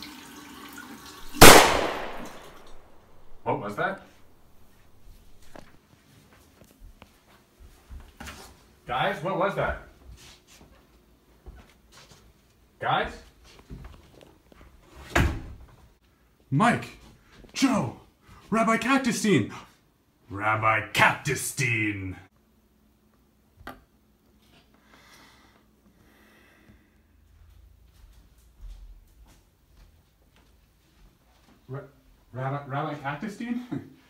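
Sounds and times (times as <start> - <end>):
tap water running into sink: 0.0 - 1.4
loud bang: 1.4 - 3.5.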